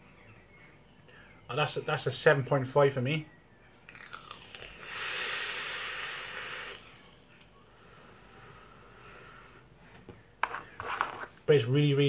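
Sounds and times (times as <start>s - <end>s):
breathy draw on e-cigarette: 4.5s - 9.7s
soft breath out: 4.8s - 10.1s.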